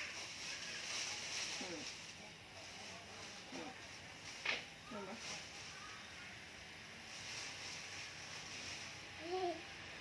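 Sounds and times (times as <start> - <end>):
plastic bag crinkling: 0.0 - 6.2, 7.0 - 9.3.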